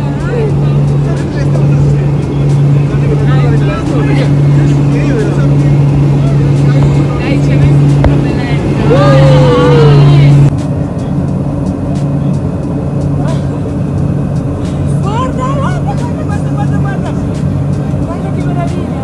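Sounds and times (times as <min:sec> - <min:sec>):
passengers talking: 0:00.0 - 0:19.0
propeller plane engines droning: 0:00.0 - 0:19.0
long drawn-out shout: 0:08.8 - 0:10.4.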